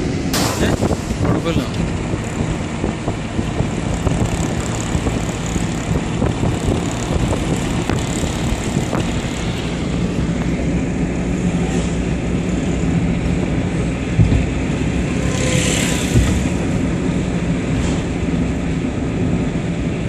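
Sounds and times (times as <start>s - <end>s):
road and wind noise in car: 0.0s - 20.0s.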